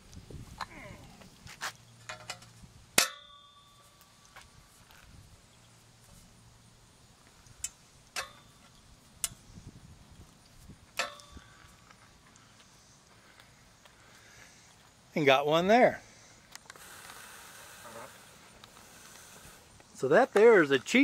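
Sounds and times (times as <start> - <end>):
metallic clang: 2.1 - 4.0, 7.6 - 9.4, 11.0 - 11.4
light metal clicks and taps: 7.5 - 9.4.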